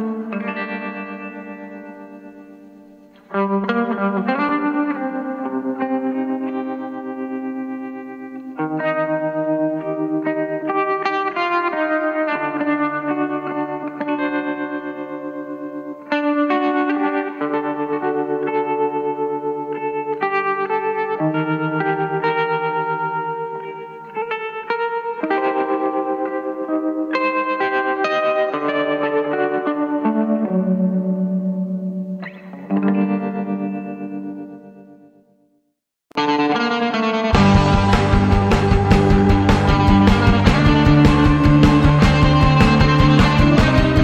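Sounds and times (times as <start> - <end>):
guitar with echo effects: 0.0 - 44.0.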